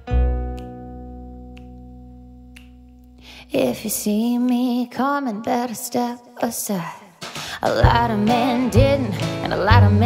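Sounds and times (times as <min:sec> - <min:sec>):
guitar chord ringing: 0:00.0 - 0:02.6
finger snaps: 0:00.4 - 0:05.8.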